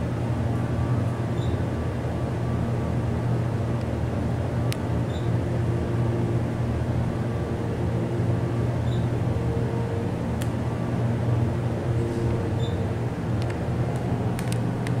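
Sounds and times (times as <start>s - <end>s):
elevator pump motor humming: 0.0s - 15.0s.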